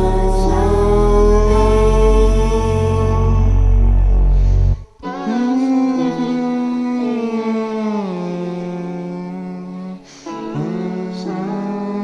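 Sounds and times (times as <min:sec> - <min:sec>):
backing music: 0:00.0 - 0:12.0
person humming long notes: 0:00.0 - 0:12.0.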